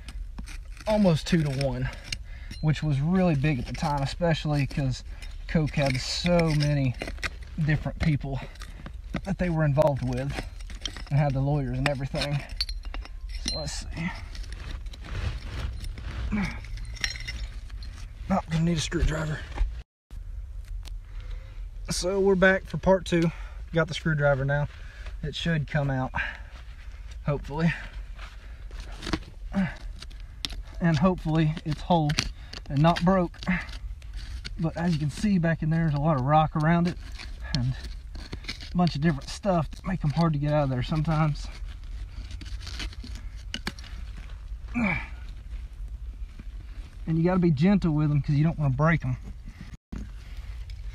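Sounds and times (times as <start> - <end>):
glass scraping on stone and grit: 0.0 - 19.7, 28.8 - 45.0
loose dirt crumbling: 0.0 - 19.8, 20.5 - 50.9.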